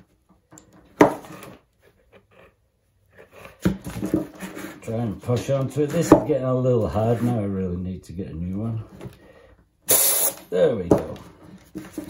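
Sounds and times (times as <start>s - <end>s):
compressed air burst: 9.9s - 10.5s.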